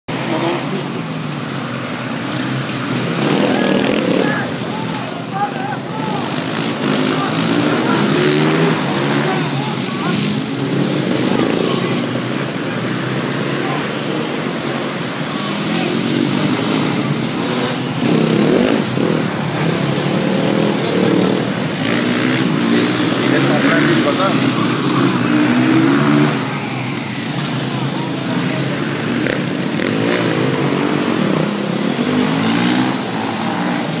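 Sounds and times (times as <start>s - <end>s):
motorcycle engines running: 0.1s - 34.0s
people's voices: 0.1s - 34.0s.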